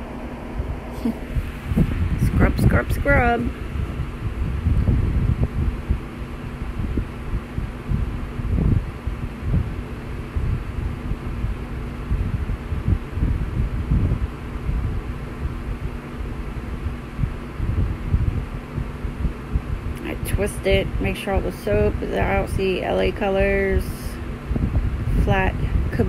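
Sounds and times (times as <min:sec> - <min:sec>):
low background rumble: 0:00.0 - 0:26.0
low hum: 0:00.0 - 0:26.0.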